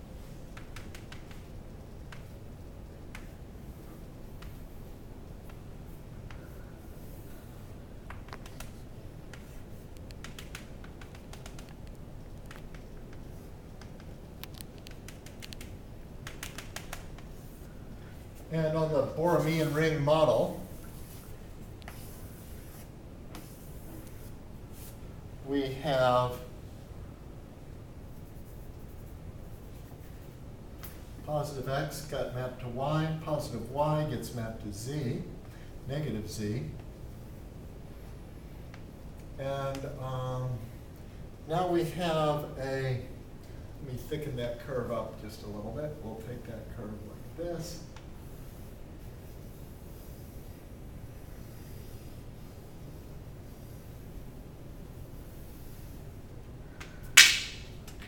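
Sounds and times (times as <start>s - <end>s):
low room hum: 0.0s - 58.0s
faint chalk ticks: 8.1s - 17.3s
chalk scratching on chalkboard: 19.3s - 25.0s, 48.2s - 56.1s.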